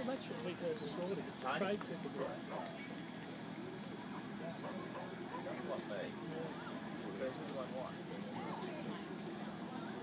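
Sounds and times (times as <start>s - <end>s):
distant people talking: 0.0s - 10.0s
open-air background noise: 0.0s - 10.0s.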